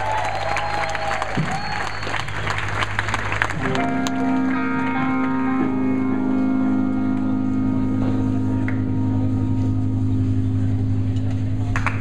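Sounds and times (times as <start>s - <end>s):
crowd clapping and cheering: 0.0s - 6.1s, 11.2s - 12.0s
electric guitar notes ringing: 3.6s - 12.0s
steady low tone: 3.6s - 12.0s.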